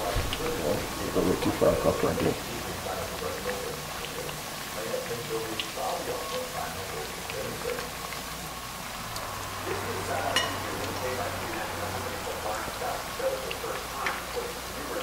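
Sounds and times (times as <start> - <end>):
dumplings sizzling in hot oil: 0.0 - 15.0.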